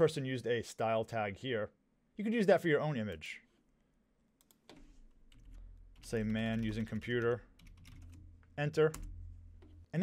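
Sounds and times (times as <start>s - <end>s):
computer keyboard typing: 4.4s - 9.8s.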